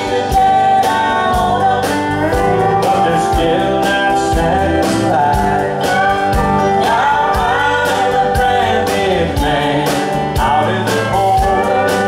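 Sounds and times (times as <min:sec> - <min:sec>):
bass guitar: 0:00.0 - 0:12.0
drums steady beat: 0:00.0 - 0:12.0
electric guitar: 0:00.0 - 0:12.0
man and woman singing: 0:00.0 - 0:12.0
pedal steel guitar: 0:00.0 - 0:12.0.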